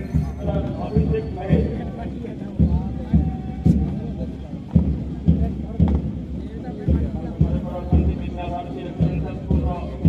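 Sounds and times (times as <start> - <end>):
bass drum thuds: 0.0 - 10.0
murmur of voices: 0.0 - 10.0.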